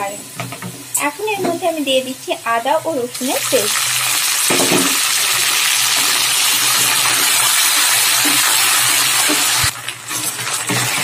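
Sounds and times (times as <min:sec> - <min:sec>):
paste sizzling in hot oil: 0:02.8 - 0:11.0.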